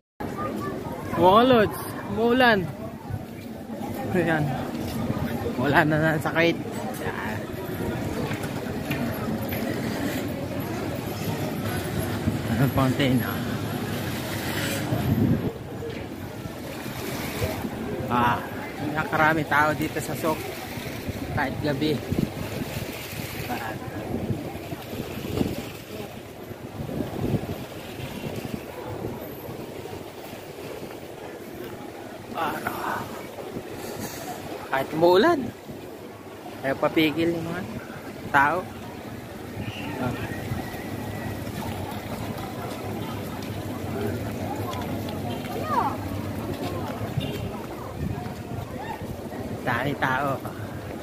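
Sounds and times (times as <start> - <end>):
fountain water splashing: 0.2 - 51.0
people talking nearby: 0.2 - 51.0
wind buffeting microphone: 0.2 - 51.0.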